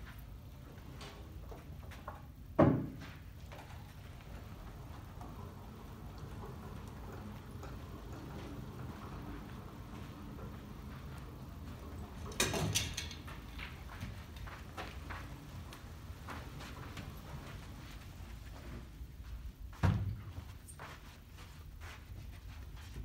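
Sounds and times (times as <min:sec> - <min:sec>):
piano dolly rolling on carpet: 0:03.0 - 0:23.0.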